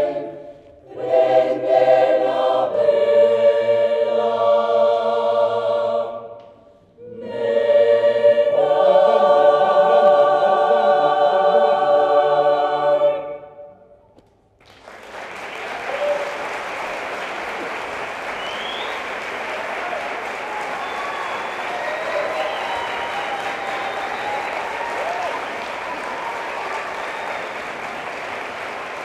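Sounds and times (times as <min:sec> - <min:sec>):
audience applause: 0:14.6 - 0:29.0
people cheering: 0:15.0 - 0:29.0
rising whistle: 0:18.3 - 0:19.1, 0:20.5 - 0:27.6.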